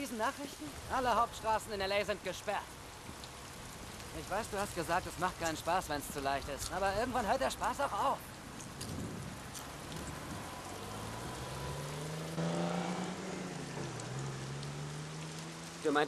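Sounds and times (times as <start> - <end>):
steady rain: 0.0 - 16.0.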